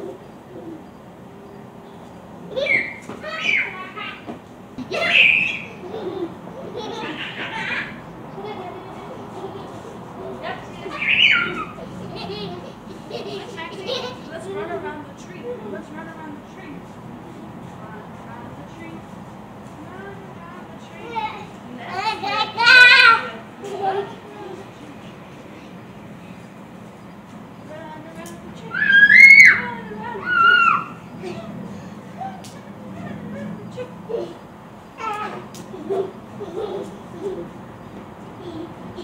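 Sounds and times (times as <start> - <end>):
toddler squealing: 2.5 - 4.1, 5.0 - 5.8, 10.9 - 11.9, 28.6 - 31.1.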